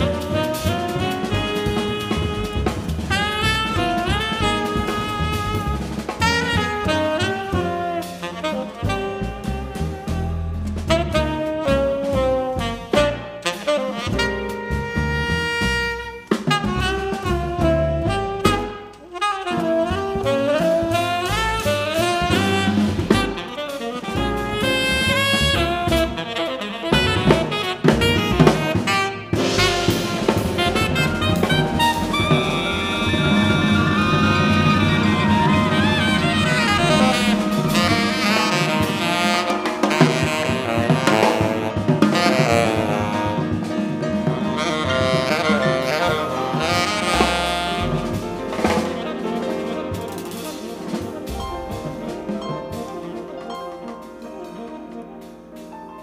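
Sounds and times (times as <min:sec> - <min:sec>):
upright bass: 0:00.0 - 0:13.4, 0:14.1 - 0:18.8, 0:19.8 - 0:23.4, 0:24.1 - 0:26.3, 0:26.9 - 0:49.4, 0:50.6 - 0:53.0
drum kit: 0:00.0 - 0:56.0
grand piano: 0:00.0 - 0:56.0
saxophone: 0:00.0 - 0:56.0.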